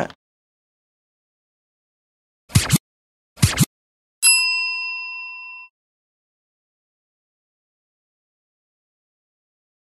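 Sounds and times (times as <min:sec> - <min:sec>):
bell-like ding: 0:04.2 - 0:05.8.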